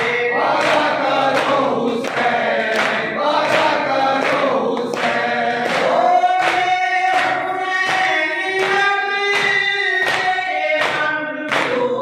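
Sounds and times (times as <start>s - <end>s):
men chanting in unison: 0.0s - 12.0s.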